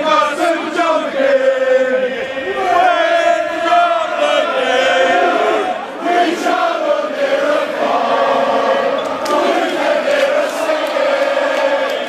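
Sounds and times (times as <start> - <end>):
football crowd chanting: 0.0 - 12.0.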